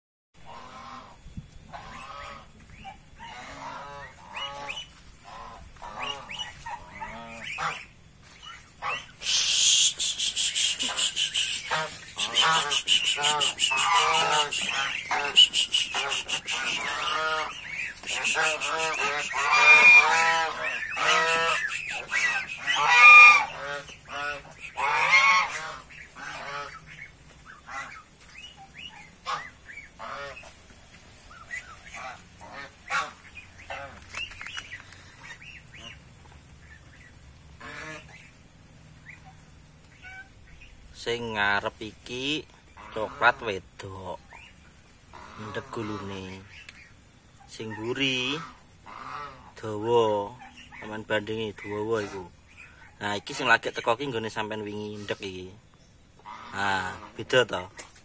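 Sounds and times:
geese honking: 0.4 - 55.6, 56.2 - 57.9.

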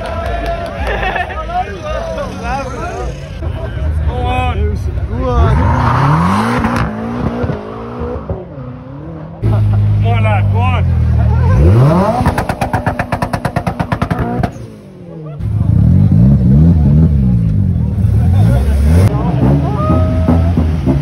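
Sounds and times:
crowd voices and shouts: 0.0 - 21.0
car engines revving hard: 4.3 - 21.0
engine stuttering at rev limiter: 11.0 - 14.8.

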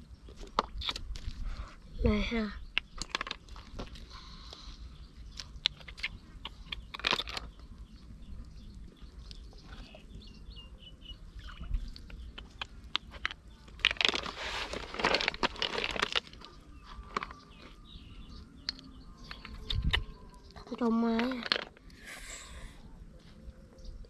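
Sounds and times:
snail shells clicking together: 2.7 - 4.1, 5.3 - 9.5, 12.0 - 14.3, 15.0 - 18.0, 18.6 - 22.0
faint bird chirps: 4.0 - 14.9, 16.3 - 24.0.

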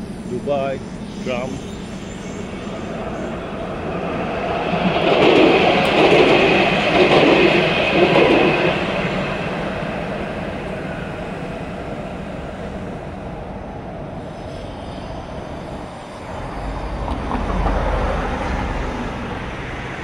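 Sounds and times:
light-rail train passing: 0.0 - 20.0
steady high whine: 0.0 - 20.0.

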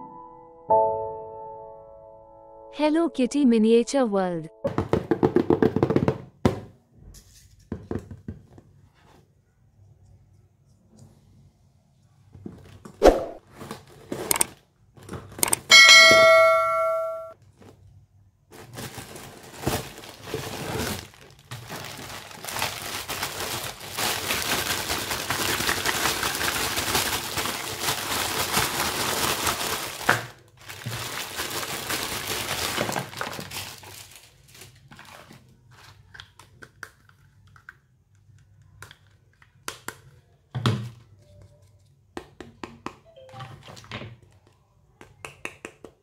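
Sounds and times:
plastic toy clicks and taps: 15.4 - 15.7
bright bell ding: 15.7 - 17.4
box rustling: 18.5 - 36.0.

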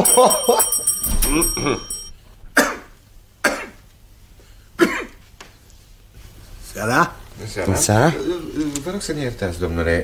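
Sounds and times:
man coughing and clearing throat: 1.1 - 3.8, 4.8 - 5.2.

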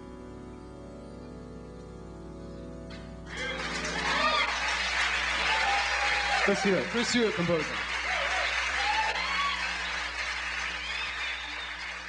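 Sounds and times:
audience applauding: 3.2 - 12.0.

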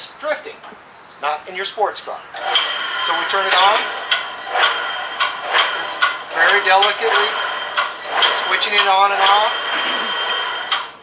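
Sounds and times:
drill press whining: 2.3 - 11.0
cutter clicking on steel: 10.6 - 11.0.

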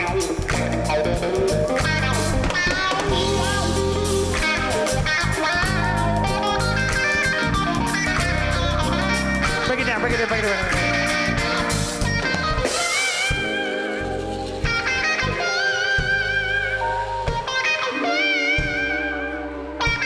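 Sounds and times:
electric guitar lead: 0.0 - 20.0
live band playing: 0.0 - 20.0.

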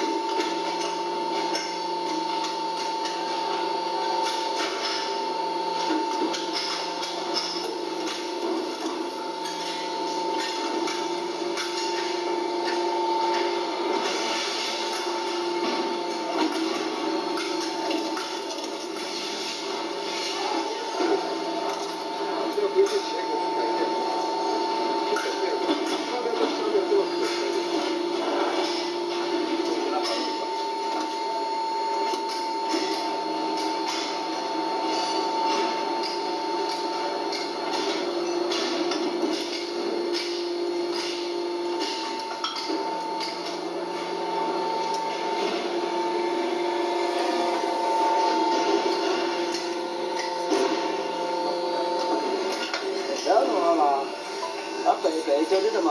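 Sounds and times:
machine whine: 0.0 - 55.9
low machine tone: 39.8 - 55.8.

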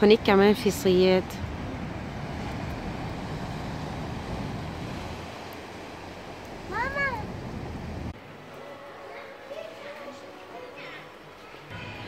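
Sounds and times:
waves breaking on rocky shore: 0.9 - 8.2
indoor shop background: 8.1 - 12.0.

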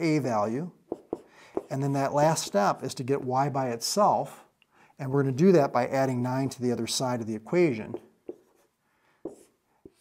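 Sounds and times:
marker writing on whiteboard: 0.9 - 3.3, 7.8 - 10.0.

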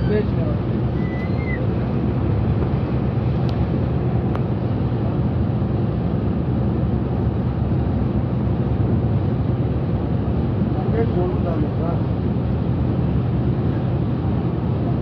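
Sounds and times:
coach engine drone: 0.0 - 15.0
tyres on road: 0.0 - 15.0.

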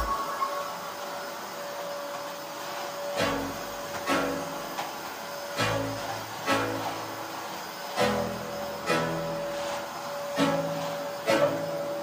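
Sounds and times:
vacuum cleaner running: 0.0 - 12.0.

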